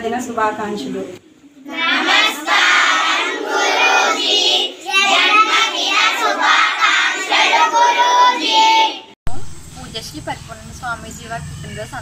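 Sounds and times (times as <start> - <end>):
children singing in unison: 1.6 - 9.2
steady low hum: 9.3 - 12.0.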